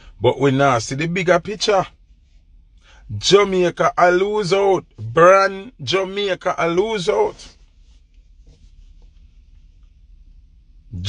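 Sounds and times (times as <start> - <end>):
car cabin low rumble: 0.0 - 11.0.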